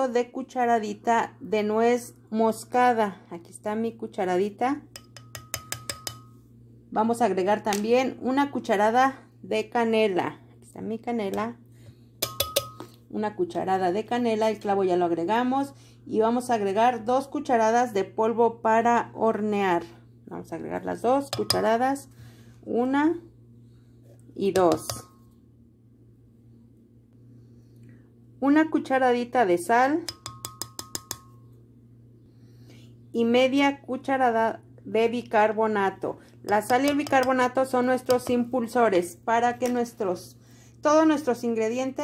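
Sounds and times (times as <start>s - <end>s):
steady low hum: 0.0s - 42.0s
spoon tapping glass jar: 4.9s - 6.4s, 12.2s - 13.0s, 21.3s - 21.8s, 24.6s - 25.3s, 30.0s - 31.5s, 36.5s - 38.5s.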